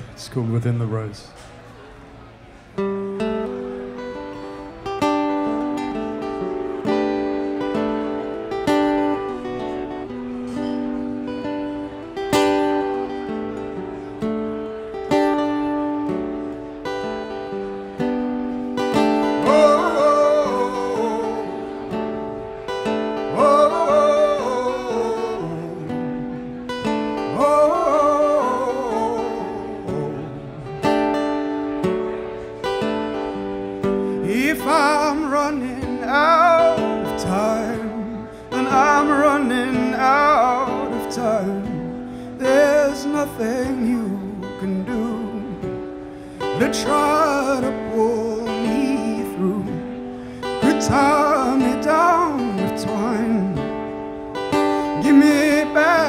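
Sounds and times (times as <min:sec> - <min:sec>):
acoustic guitar chords: 0:00.0 - 0:56.0
man singing: 0:19.0 - 0:22.0, 0:23.2 - 0:31.0, 0:34.1 - 0:56.0.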